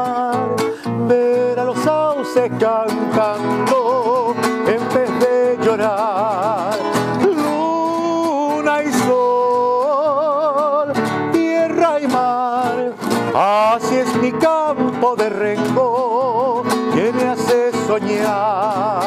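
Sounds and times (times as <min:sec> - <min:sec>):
man singing with vibrato: 0:00.0 - 0:19.0
strummed nylon-string guitar: 0:00.0 - 0:19.0.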